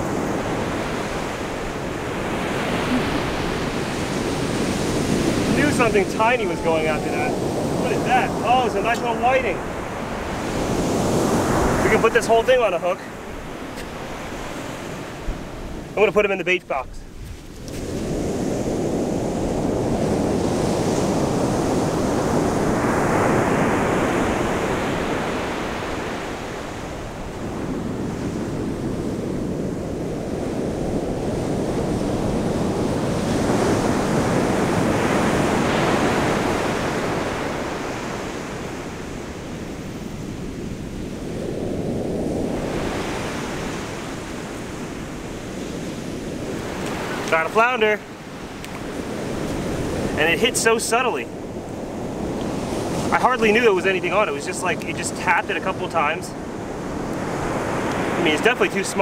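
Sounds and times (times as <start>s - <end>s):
ocean surf breaking: 0.0s - 59.0s.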